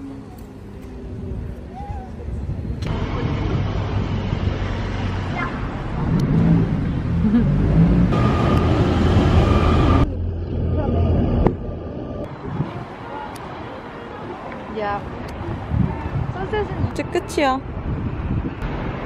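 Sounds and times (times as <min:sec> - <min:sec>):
cars driving past: 0:02.9 - 0:16.9.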